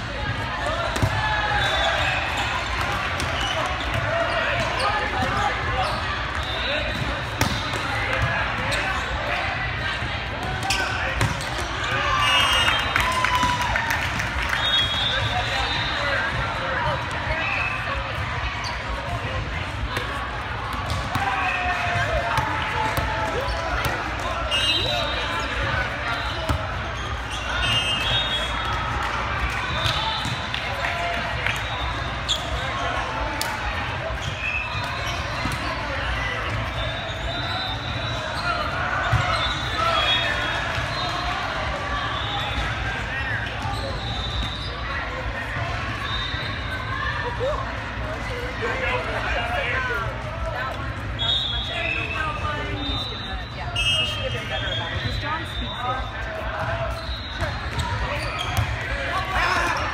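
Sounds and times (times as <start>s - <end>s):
many voices chattering: 0.0s - 59.9s.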